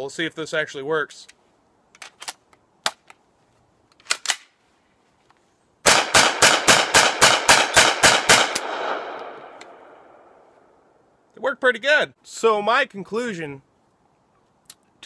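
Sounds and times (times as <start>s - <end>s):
gun loading clicks: 1.2s - 3.2s, 3.9s - 4.6s
rapid gunshots with echo: 5.9s - 9.6s.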